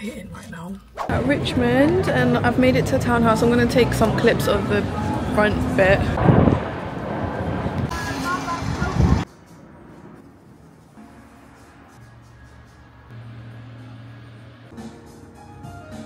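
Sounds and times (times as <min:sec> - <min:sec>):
passers-by talking: 0:00.2 - 0:06.2, 0:07.4 - 0:09.3
traffic going by: 0:01.0 - 0:14.7.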